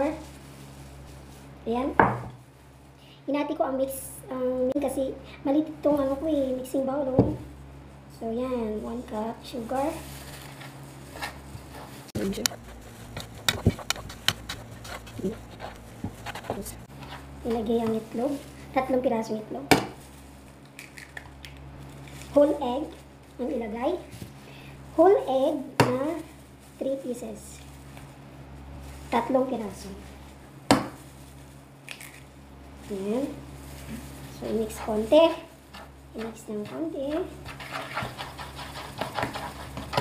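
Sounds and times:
plastic gloves crinkling: 0.0 - 3.0, 8.6 - 40.0
steady low hum: 0.0 - 40.0
egg shell cracking: 20.6 - 21.6, 31.9 - 32.3.

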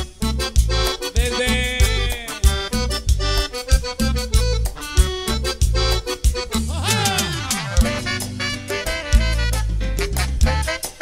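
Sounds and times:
accordion-led tropical band music: 0.0 - 11.0
falling pitch slide: 7.0 - 8.3.

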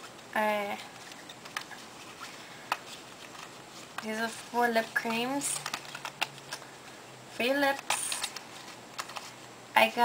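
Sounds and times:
plastic packs clicking and rustling: 5.0 - 6.6, 7.8 - 9.4.

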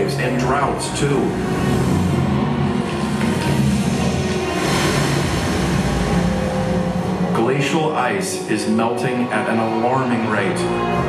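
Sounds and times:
film soundtrack music: 0.0 - 11.0
heavy low rumble: 0.0 - 11.0.

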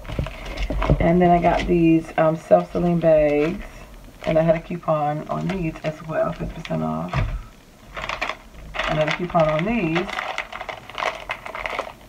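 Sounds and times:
plastic packaging crinkling: 0.0 - 12.0
plastic beads rattling: 7.9 - 12.0.

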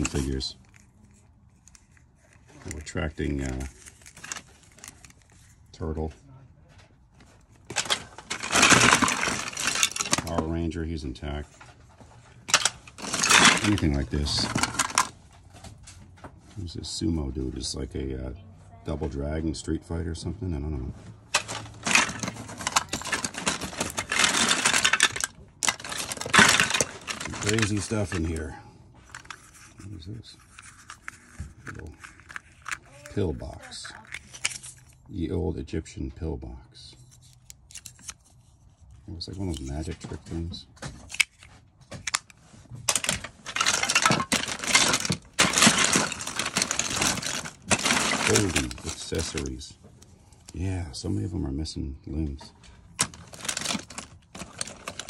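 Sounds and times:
plastic toys clattering in box: 0.0 - 5.5, 7.5 - 10.6, 11.2 - 15.3, 21.2 - 35.0, 39.4 - 49.7, 52.9 - 55.0.

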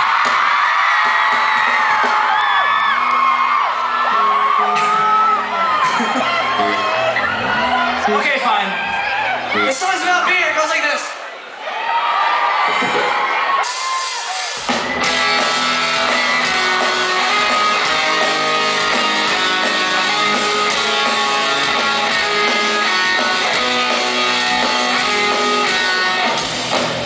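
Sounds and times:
live rock band playing: 0.0 - 10.1, 13.1 - 27.0.

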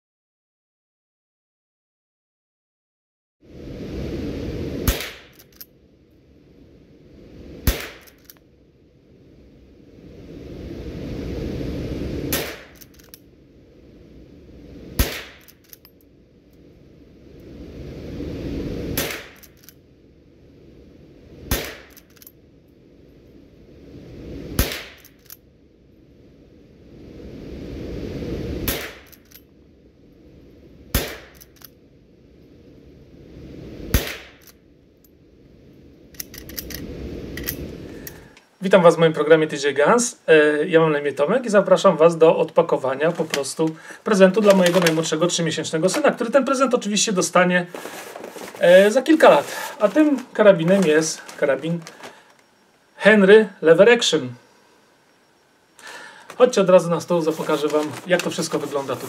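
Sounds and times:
rushing background noise: 36.1 - 38.6.

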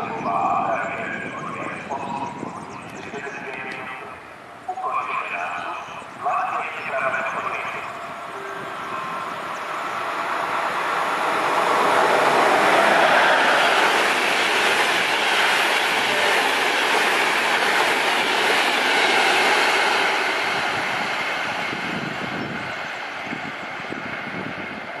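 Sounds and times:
train passing on rails: 0.0 - 25.0.

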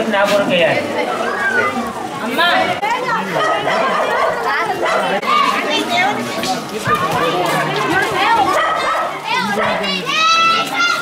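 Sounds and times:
crowd chatter: 0.0 - 11.0
children shouting: 0.9 - 11.0.

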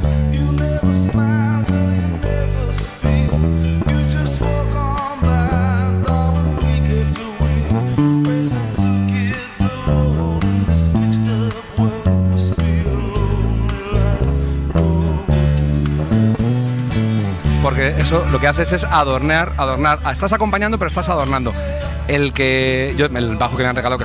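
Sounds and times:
electric bass guitar: 0.0 - 24.0
pop-rock song with singing: 0.0 - 24.0.

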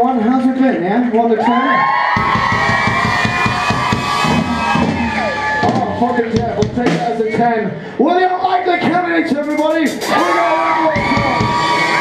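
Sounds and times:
live rock band playing: 2.2 - 7.3
fast drums: 2.2 - 7.5, 8.8 - 12.0.

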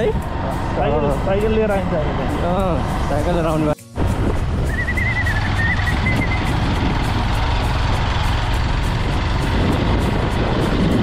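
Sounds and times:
motorcycle engine rumbling: 0.0 - 11.0
wind noise on microphone: 2.6 - 11.0.

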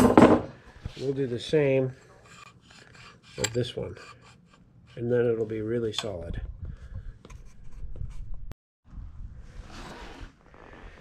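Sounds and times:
metal scraping: 1.0 - 6.0.

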